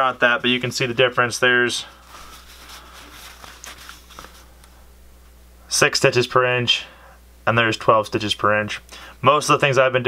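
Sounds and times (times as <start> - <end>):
steady low hum: 0.0 - 10.0
fabric rustling: 1.8 - 4.9.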